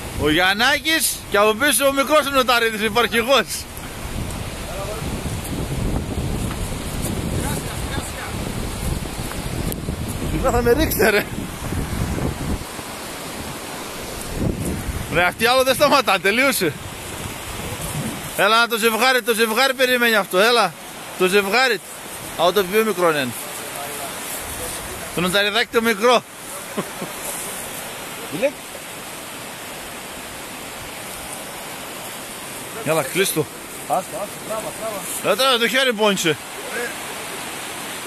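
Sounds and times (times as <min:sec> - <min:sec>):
wind buffeting microphone: 0:00.0 - 0:18.4
stream rushing: 0:00.0 - 0:38.0.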